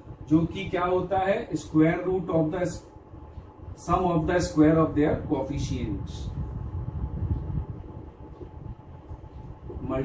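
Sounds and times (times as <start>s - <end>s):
low rumble: 2.9s - 10.0s.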